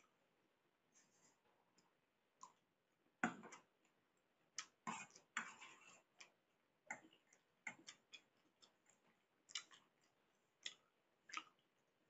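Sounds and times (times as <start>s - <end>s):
chewing: 4.6s - 11.7s
fork scraping plate: 4.9s - 6.1s.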